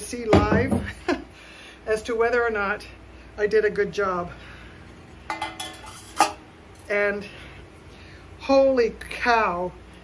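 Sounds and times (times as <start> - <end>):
ceramic clinking against metal dish: 5.3 - 6.4.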